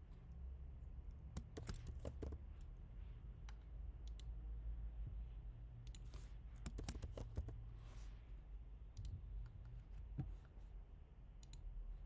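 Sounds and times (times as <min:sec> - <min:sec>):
computer mouse clicks: 0:01.4 - 0:02.4, 0:03.4 - 0:04.3, 0:05.8 - 0:07.6, 0:11.4 - 0:11.7.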